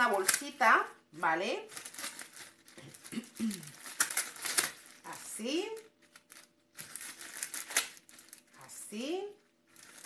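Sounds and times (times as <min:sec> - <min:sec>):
plastic bag crinkling: 0:01.6 - 0:08.7, 0:09.3 - 0:10.0.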